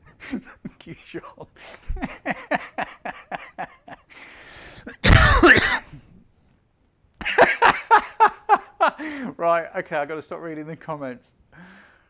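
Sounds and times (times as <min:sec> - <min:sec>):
man laughing: 0:00.2 - 0:04.1, 0:07.2 - 0:09.3
loud cough: 0:04.9 - 0:06.1.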